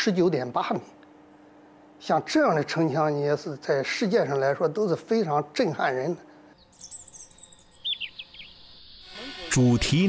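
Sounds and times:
small birds twittering: 6.6 - 9.4.

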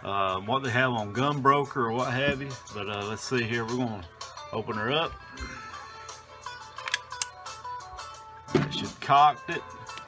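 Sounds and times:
quiet background music: 0.0 - 10.0
shotgun action metallic clicks: 6.8 - 7.3.

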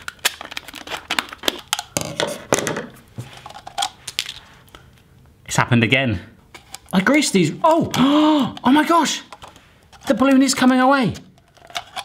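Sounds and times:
gelatine shell crackling: 0.0 - 5.2, 6.5 - 12.0.

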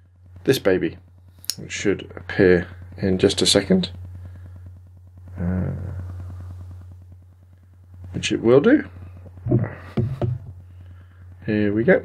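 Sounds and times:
low electrical hum: 0.0 - 12.0
fast buzzing pulse: 1.0 - 12.0.

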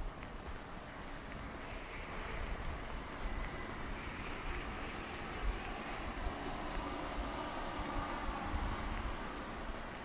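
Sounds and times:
distant traffic hum: 0.0 - 10.0.

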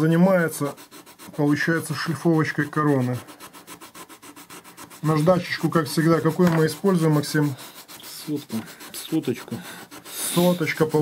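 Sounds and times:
sandpaper rubbing on wood: 0.0 - 11.0.

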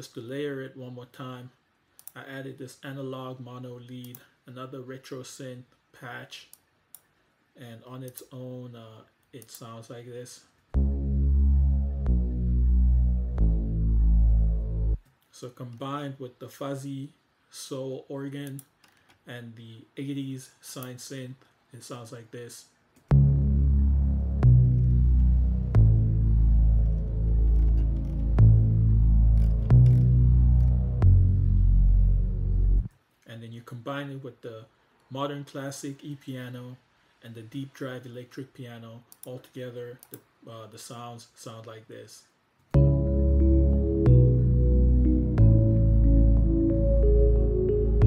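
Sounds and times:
analog synth lead notes: 10.8 - 15.0, 23.1 - 32.9, 42.8 - 48.0.

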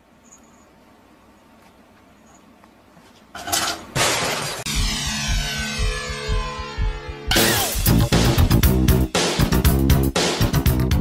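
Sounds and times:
loud sudden crash: 4.0 - 8.4
music with sweeping tones: 4.6 - 11.0.

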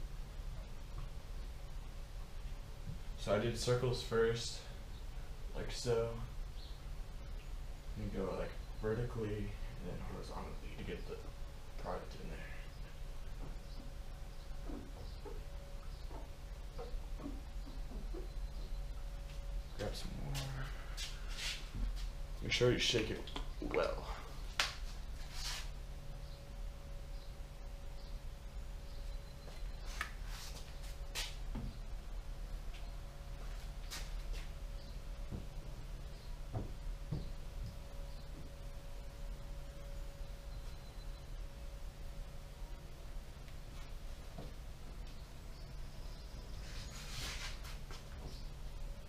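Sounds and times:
low steady hum: 0.0 - 49.0.

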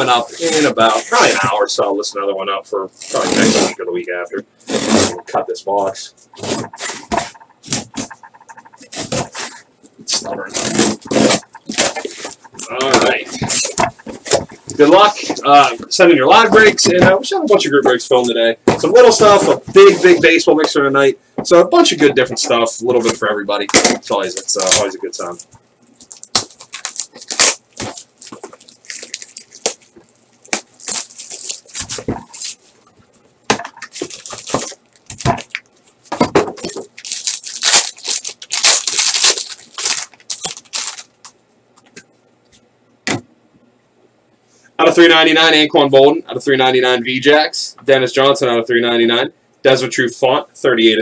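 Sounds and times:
box cutter slicing packing tape: 10.5 - 12.0
plastic wrap crinkling and tearing: 10.5 - 14.8, 24.1 - 25.4, 26.0 - 32.6, 33.8 - 35.7, 36.6 - 41.2.

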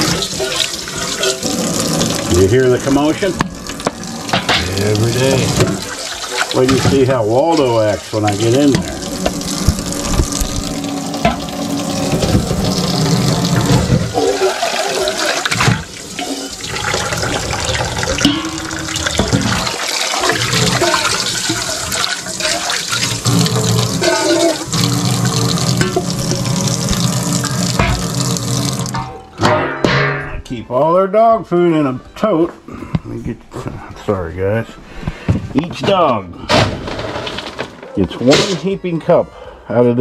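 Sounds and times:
water splashing into metal bowls: 0.0 - 30.2.

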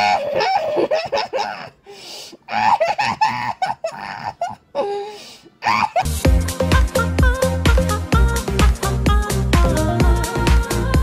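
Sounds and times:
person laughing loudly: 0.0 - 1.8, 2.5 - 6.2.

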